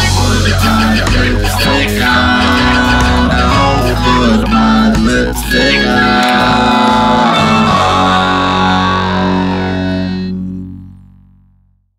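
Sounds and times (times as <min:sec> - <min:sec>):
distorted electric guitar chord ringing: 0:00.0 - 0:11.6.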